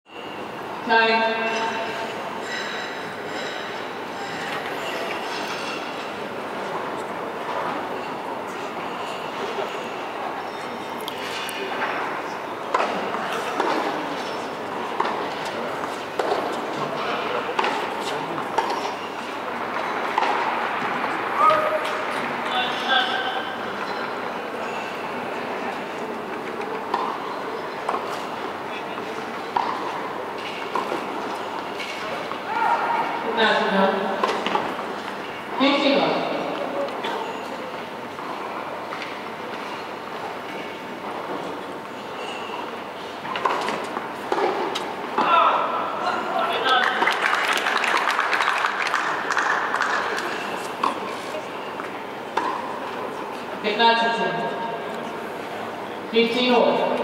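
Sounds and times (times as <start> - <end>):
indoor sports hall background noise: 0.0 - 57.0.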